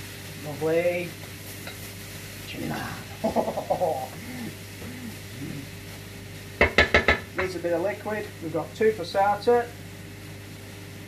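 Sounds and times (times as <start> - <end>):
low sizzle: 0.0 - 11.0
sharp knocks: 6.6 - 7.2.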